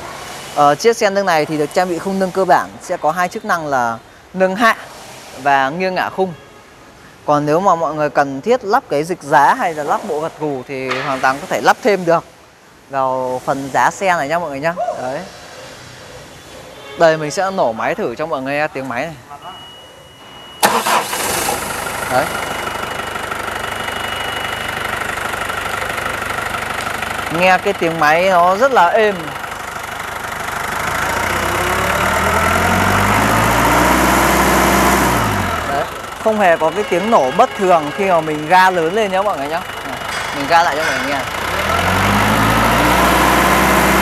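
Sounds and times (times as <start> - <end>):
forklift engine revving: 20.6 - 44.0.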